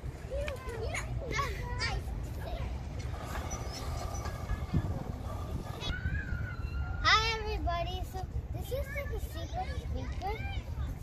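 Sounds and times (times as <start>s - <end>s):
children calling and chattering: 0.0s - 11.0s
steady low rumble: 2.0s - 8.6s.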